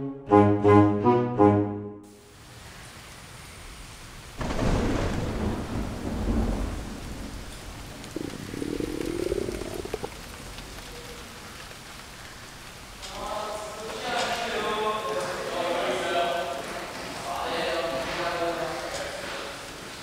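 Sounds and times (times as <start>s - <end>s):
steady hiss like rain: 2.1s - 20.0s
thunder clap and rumble: 4.4s - 10.9s.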